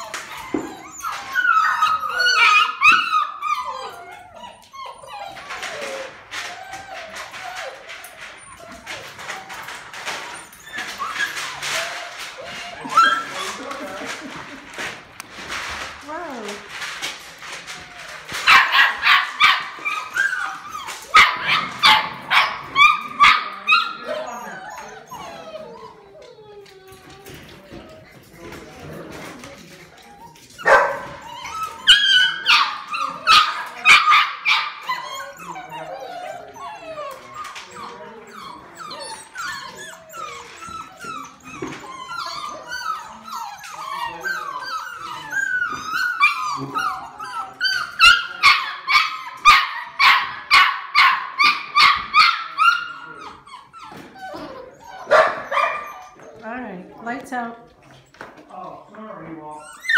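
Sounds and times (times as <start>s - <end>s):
puppies barking and yipping: 0.0s - 57.1s, 57.7s - 59.9s
puppies whining: 0.0s - 59.9s.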